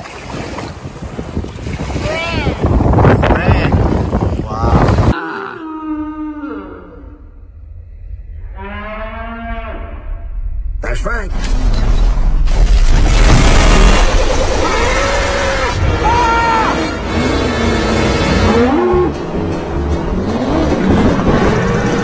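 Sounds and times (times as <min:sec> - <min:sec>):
low moo-like calls: 0:05.1 - 0:07.6, 0:08.3 - 0:10.3, 0:17.5 - 0:19.2
loud rushing noise: 0:10.5 - 0:22.0.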